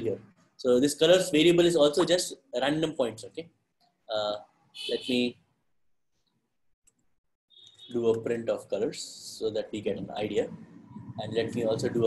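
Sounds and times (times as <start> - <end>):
man speaking: 0.0 - 3.5, 4.1 - 5.3, 7.9 - 12.0.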